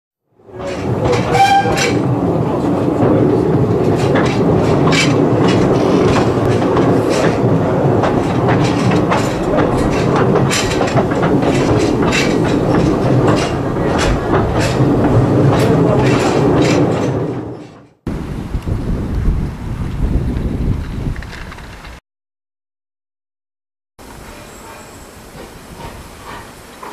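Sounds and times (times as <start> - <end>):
train rumbling on track: 0.3 - 22.0, 24.0 - 26.9
wheels clicking on rails: 0.4 - 22.0.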